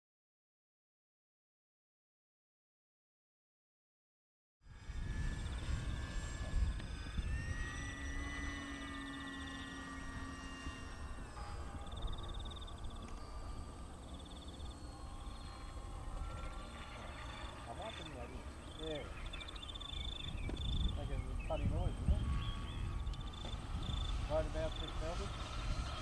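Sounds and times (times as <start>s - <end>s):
model plane motor whine: 4.6s - 26.0s
wind on microphone: 4.7s - 26.0s
rapid pulsed chirping: 7.0s - 25.9s.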